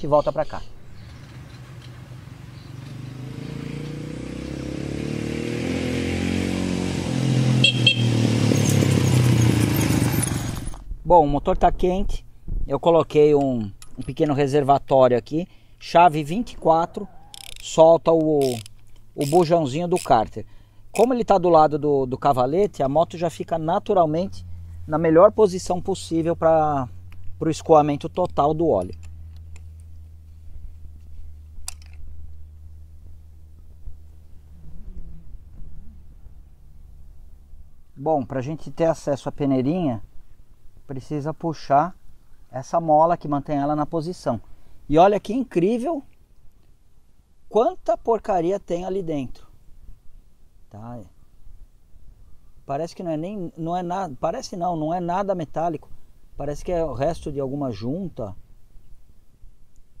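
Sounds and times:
motorcycle engine passing by: 1.0 - 10.8, 32.1 - 37.6
sharp clicks: 17.3 - 20.2
steady low hum: 22.0 - 38.0.

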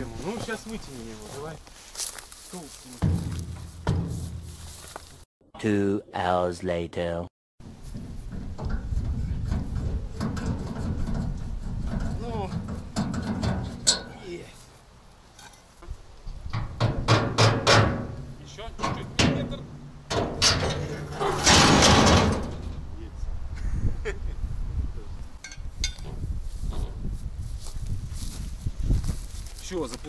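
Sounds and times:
metal knocks and bangs: 3.0 - 4.8, 7.6 - 14.2, 16.5 - 23.0
harsh metal clatter: 7.6 - 14.1, 16.6 - 22.9.

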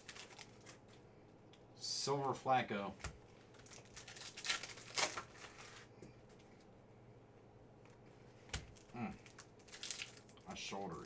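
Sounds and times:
foil card packs rustling: 0.0 - 1.0, 3.0 - 5.9, 8.6 - 11.0.

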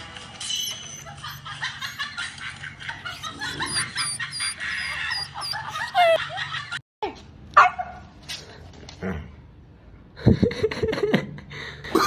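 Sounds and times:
puppy yipping: 0.4 - 2.3, 2.9 - 6.4
dog barking: 7.6 - 8.0.

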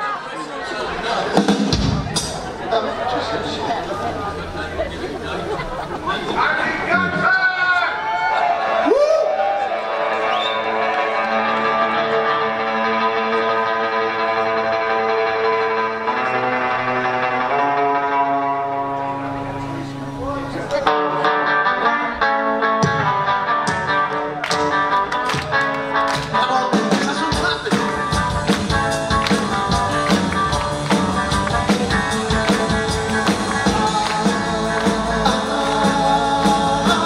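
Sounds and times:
live rock band: 0.8 - 4.1, 8.7 - 37.0
drum kit beat: 1.3 - 2.6, 22.8 - 37.0
long held guitar chords: 9.8 - 37.0.

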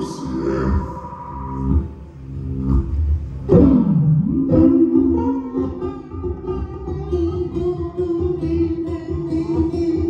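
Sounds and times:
low drone: 0.0 - 8.4
amplified banjo music: 1.6 - 10.0
note sliding down in pitch: 2.5 - 6.9.

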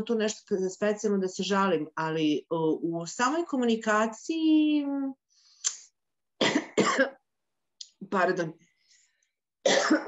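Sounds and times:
woman coughing: 6.4 - 7.2, 9.6 - 10.0.

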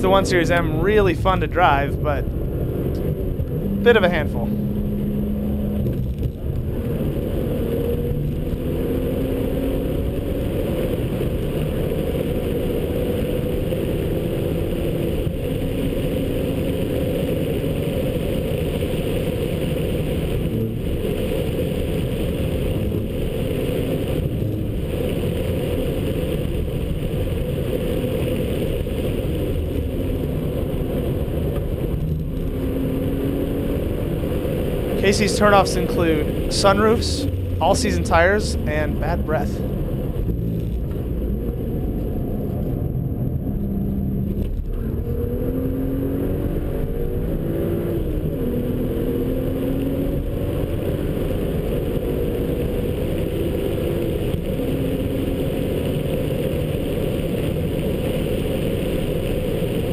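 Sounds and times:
car engine pulling hard: 0.0 - 59.9.

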